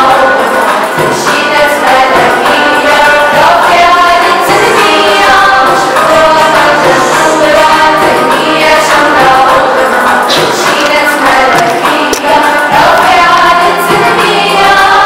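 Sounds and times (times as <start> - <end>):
choir singing: 0.0 - 15.0
musical accompaniment: 0.0 - 15.0.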